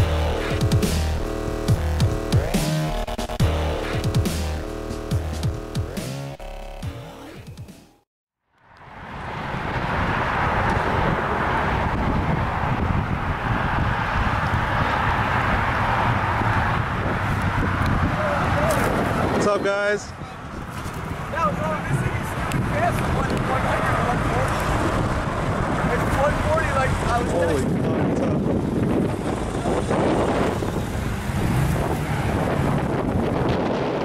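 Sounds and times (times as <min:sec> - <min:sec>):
electronic dance music: 0:00.0 - 0:08.0
cars driving past: 0:08.6 - 0:34.0.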